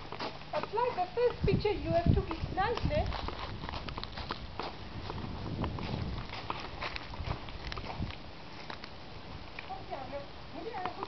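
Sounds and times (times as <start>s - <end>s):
footsteps crunching on gravel: 0.0s - 9.0s.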